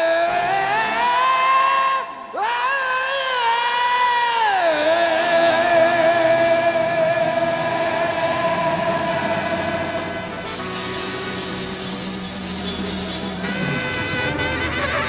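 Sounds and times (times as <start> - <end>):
rock band holding high note: 4.9 - 15.0.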